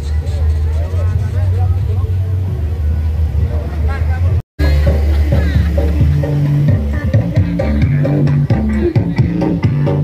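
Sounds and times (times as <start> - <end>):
deep bass music: 0.0 - 10.0
people's voices: 0.0 - 10.0.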